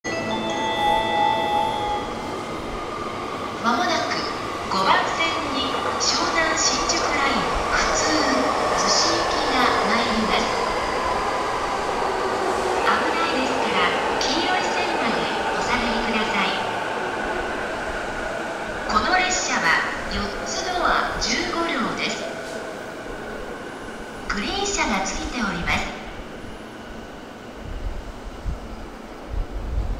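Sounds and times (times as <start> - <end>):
train hum: 0.1 - 29.9.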